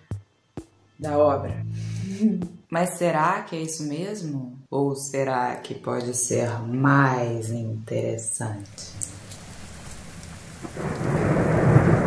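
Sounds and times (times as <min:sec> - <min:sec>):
thunder rumble: 0:09.4 - 0:12.0.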